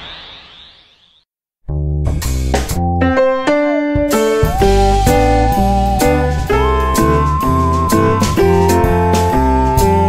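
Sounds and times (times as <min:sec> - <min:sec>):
piano music over deep bass: 0:02.8 - 0:10.0.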